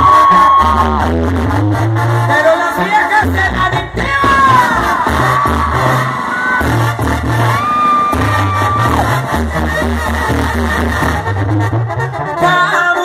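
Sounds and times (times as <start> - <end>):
brass band playing: 0.0 - 13.0
crowd noise: 0.0 - 13.0
tuba bass line: 0.0 - 13.0
drums: 3.2 - 11.9.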